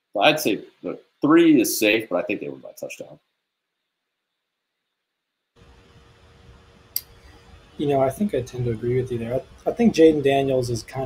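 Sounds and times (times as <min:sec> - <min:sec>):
microphone hum and hiss: 0:05.6 - 0:11.0.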